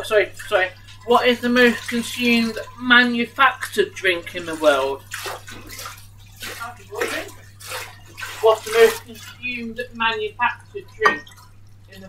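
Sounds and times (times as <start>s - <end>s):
low electrical hum and hiss: 0.0s - 12.0s.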